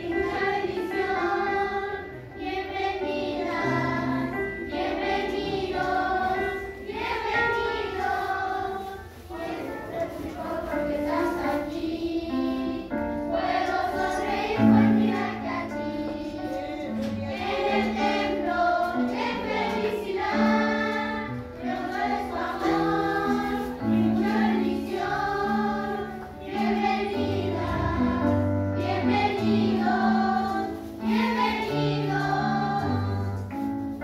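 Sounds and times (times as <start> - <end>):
children singing: 0.0 - 33.5.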